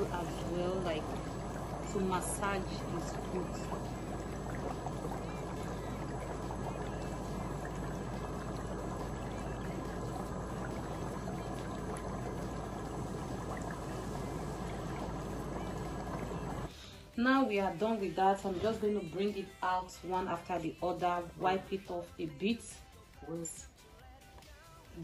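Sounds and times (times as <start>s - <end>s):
vibration motor humming: 0.0s - 16.7s
water bubbling and churning: 0.0s - 16.7s.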